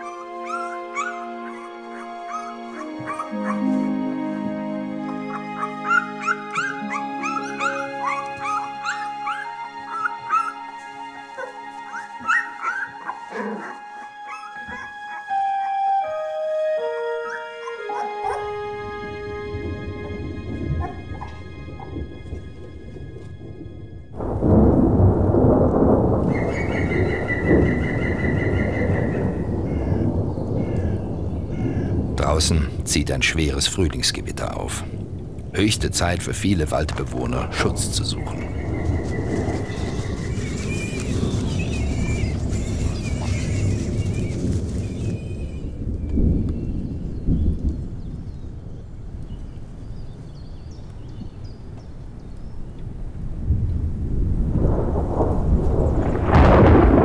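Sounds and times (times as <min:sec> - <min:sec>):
fox cubs squeaking and whimpering: 0:00.0 - 0:03.7, 0:05.1 - 0:10.6, 0:11.4 - 0:15.8, 0:38.4 - 0:45.7
orchestral music: 0:00.0 - 0:29.6, 0:32.2 - 0:46.0
low rumble: 0:19.5 - 0:48.6
thunder: 0:20.0 - 0:33.7, 0:36.8 - 0:49.2, 0:52.9 - 0:57.0.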